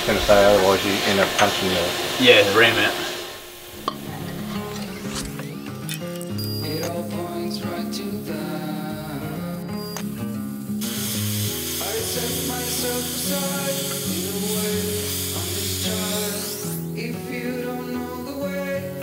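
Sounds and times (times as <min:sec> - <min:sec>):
plasma cutter hissing: 0:00.0 - 0:05.6, 0:06.8 - 0:18.8
background music: 0:03.9 - 0:19.0.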